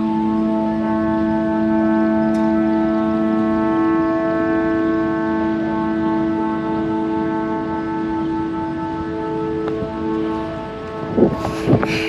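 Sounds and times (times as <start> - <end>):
kite flutes droning chord: 0.0 - 12.0
low wind rumble: 0.0 - 12.0.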